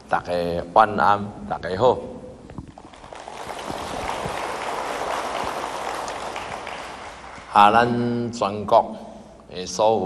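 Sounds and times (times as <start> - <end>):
audience clapping: 2.8 - 8.0.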